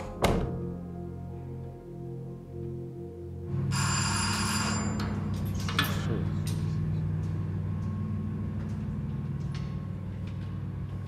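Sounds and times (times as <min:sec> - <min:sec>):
low background music: 0:00.0 - 0:11.0
electric doorbell ringing: 0:03.7 - 0:05.5.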